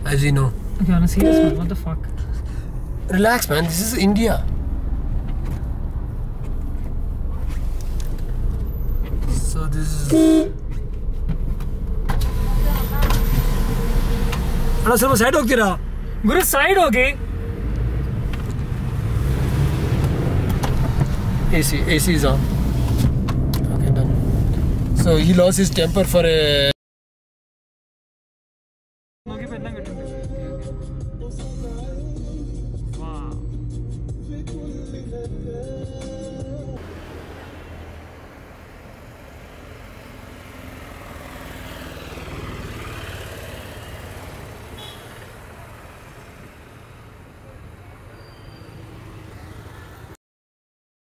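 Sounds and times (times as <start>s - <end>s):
car engine and road noise: 0.0s - 26.7s, 29.3s - 50.2s.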